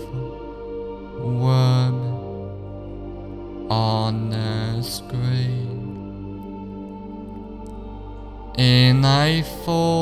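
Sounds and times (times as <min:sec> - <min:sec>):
chant-like tones: 0:00.0 - 0:10.0
steady drone: 0:00.0 - 0:10.0.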